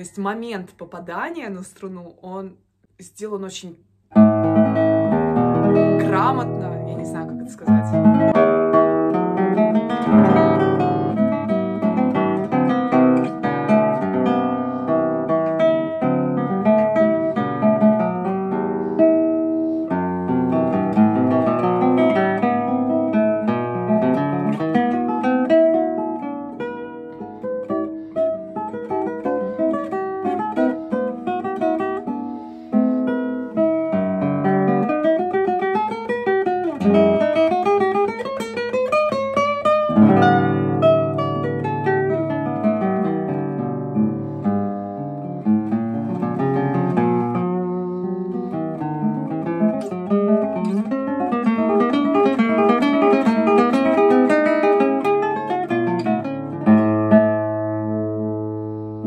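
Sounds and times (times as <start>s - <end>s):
fingerstyle classical guitar: 3.1s - 59.0s.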